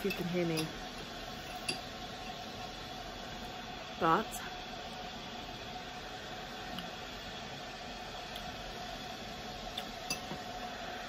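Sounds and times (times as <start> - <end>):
metal spoon clink: 0.0 - 0.8, 1.4 - 2.4, 10.0 - 10.3
faint steady hum: 0.0 - 11.0.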